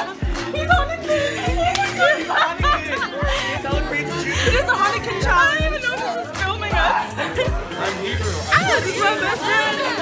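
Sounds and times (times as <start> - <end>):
music playing: 0.0 - 10.0
people chattering excitedly: 0.0 - 10.0.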